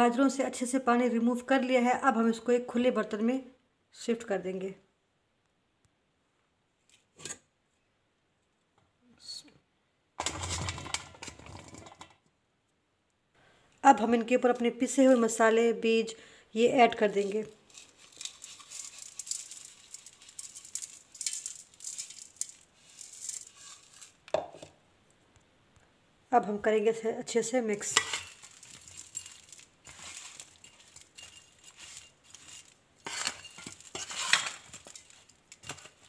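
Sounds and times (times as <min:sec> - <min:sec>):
spice seeds pouring into bowl: 0:17.0 - 0:24.5, 0:27.9 - 0:36.0
scraping handling sound: 0:17.1 - 0:24.7, 0:27.9 - 0:36.0.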